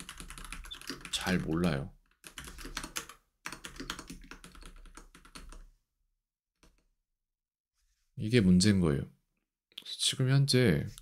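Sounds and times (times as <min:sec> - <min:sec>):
typing on computer keyboard: 0:00.0 - 0:05.6.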